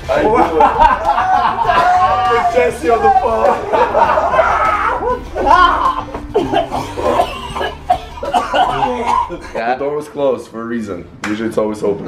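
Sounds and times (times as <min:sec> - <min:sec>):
men laughing: 0:00.0 - 0:09.7
men talking: 0:00.0 - 0:12.0.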